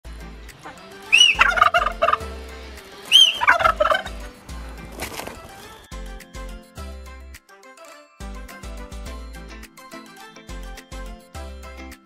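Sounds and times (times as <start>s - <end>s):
turkey gobbling: 0.6s - 2.4s, 3.0s - 5.7s.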